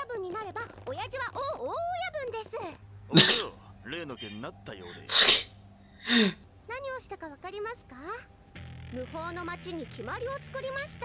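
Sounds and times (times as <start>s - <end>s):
person sneezing: 3.1s - 3.6s, 5.0s - 6.4s.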